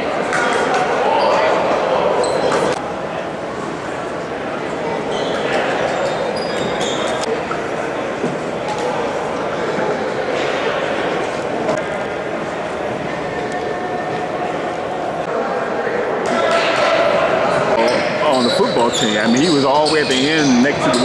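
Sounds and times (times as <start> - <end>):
echoing crowd chatter: 0.0 - 21.0.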